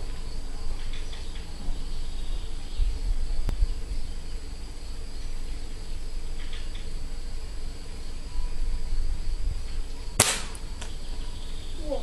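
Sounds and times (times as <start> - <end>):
air rifle shot: 10.2 - 10.9.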